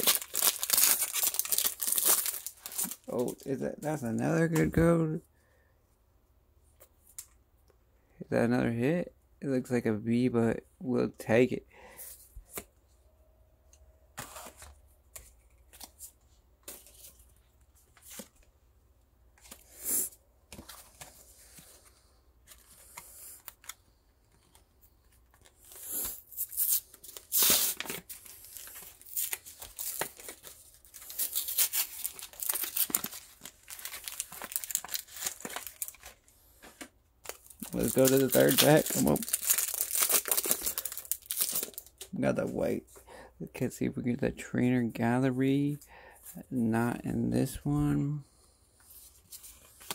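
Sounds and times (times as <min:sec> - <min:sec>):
foil wrapper tearing and crinkling: 0:00.0 - 0:03.5, 0:25.5 - 0:36.2, 0:37.3 - 0:41.9.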